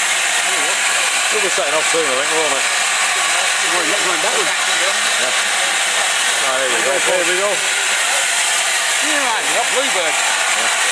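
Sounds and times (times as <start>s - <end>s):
crowd voices: 0.0s - 10.9s
steam hissing from locomotive: 0.0s - 10.9s.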